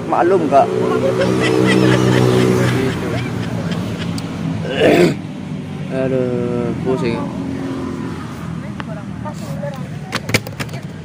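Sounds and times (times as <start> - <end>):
low engine drone: 0.0 - 5.2.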